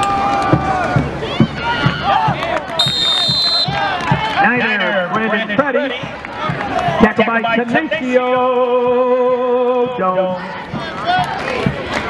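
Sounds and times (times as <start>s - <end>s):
people shouting: 0.0s - 5.1s
referee's whistle: 2.8s - 3.9s.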